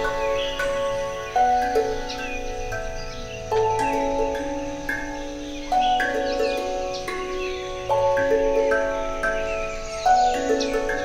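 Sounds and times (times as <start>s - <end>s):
ambient ringing chords: 0.0s - 11.0s.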